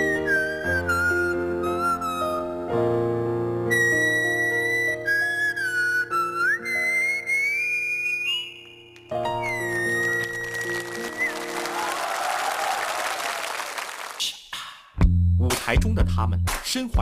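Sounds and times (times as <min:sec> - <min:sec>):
applause: 0:09.9 - 0:14.3.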